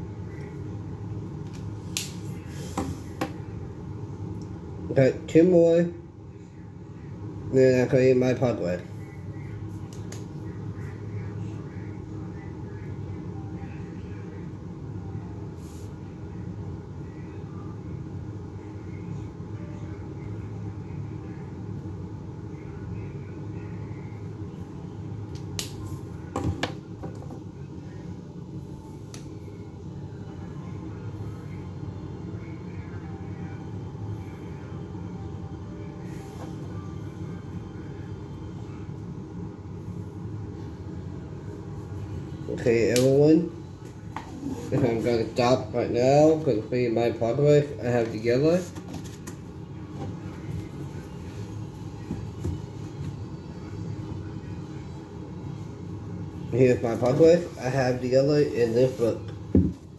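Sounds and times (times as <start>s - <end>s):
low room hum: 0.0s - 59.9s.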